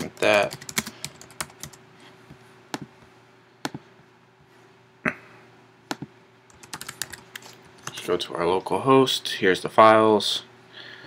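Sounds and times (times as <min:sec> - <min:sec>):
typing on computer keyboard: 0:00.0 - 0:01.8, 0:05.9 - 0:08.0.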